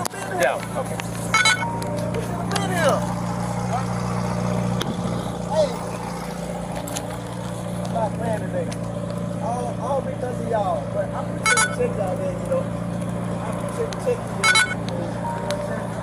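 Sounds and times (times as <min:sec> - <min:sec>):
indistinct voices talking: 0:00.0 - 0:16.0
traffic on a busy road: 0:00.0 - 0:16.0.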